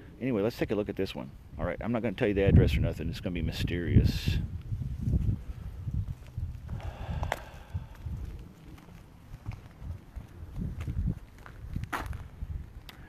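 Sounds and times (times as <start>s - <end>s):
microphone handling rubs: 4.7s - 7.0s
footsteps on driveway: 6.0s - 13.0s.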